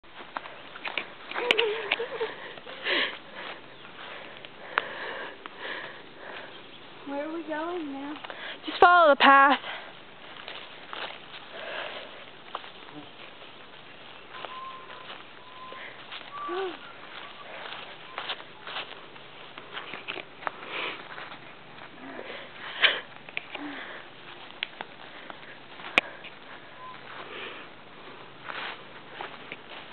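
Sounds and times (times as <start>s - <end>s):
rustling: 0.1s - 29.9s
breathy sniffing: 2.1s - 6.8s, 11.4s - 13.2s
puffs of breath: 2.2s - 6.7s, 11.4s - 12.3s, 22.1s - 24.2s.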